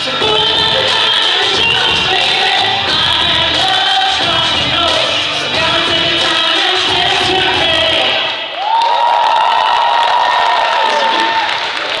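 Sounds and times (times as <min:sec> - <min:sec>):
backing music: 0:00.0 - 0:08.6
audience applauding and cheering: 0:08.1 - 0:12.0.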